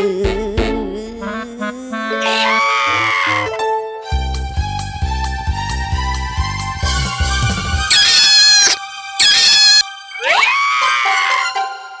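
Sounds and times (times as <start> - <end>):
background music: 0.0 - 12.0
cartoon dog screaming: 2.1 - 3.6, 7.9 - 11.6.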